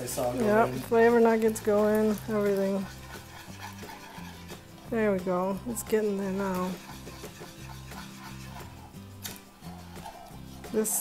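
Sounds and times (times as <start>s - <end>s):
soft background music: 0.0s - 11.0s
whisk scraping metal saucepan: 0.0s - 11.0s.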